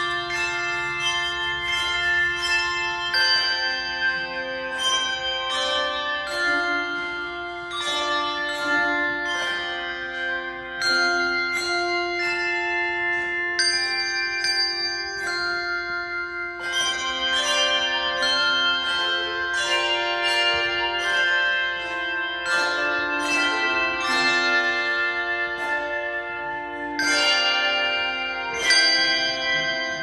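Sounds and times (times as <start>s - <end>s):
instrumental music of struck notes: 0.0s - 30.0s.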